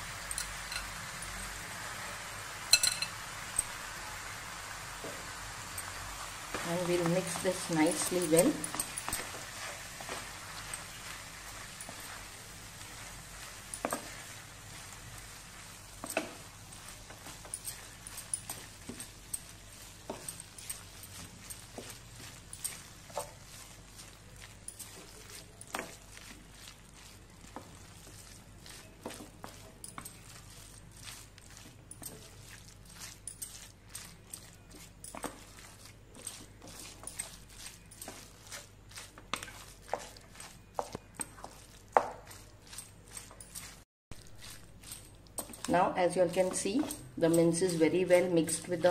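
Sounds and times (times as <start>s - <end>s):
faint sizzle: 0.0s - 33.2s
wooden spatula scraping a pan: 5.0s - 48.9s
spatula tapping pan: 8.0s - 23.8s, 39.2s - 42.5s.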